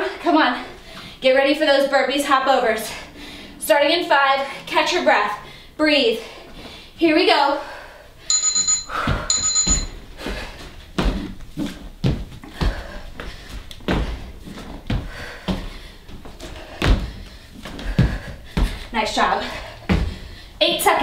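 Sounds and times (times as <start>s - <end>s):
two-tone timer beep: 8.3s - 10.0s.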